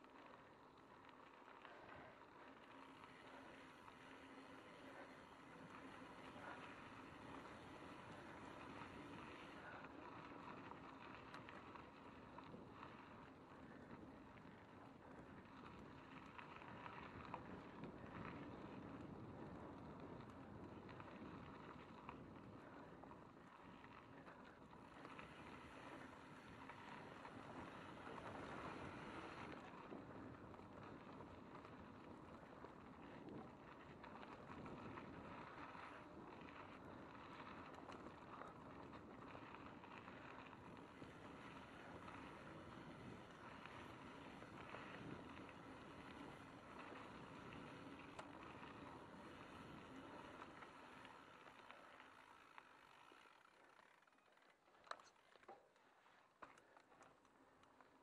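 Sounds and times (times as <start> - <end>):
bike tyres rumbling on gravel: 0.0 - 58.0.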